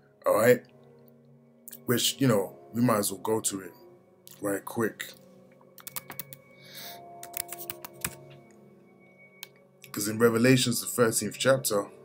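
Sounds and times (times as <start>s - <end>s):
computer keyboard key clicks: 5.8s - 6.4s, 7.2s - 8.2s.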